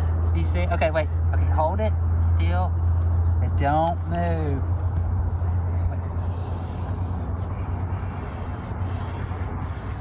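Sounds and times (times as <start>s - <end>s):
steady low hum: 0.0s - 10.0s
marker scratching on paper: 6.1s - 10.0s.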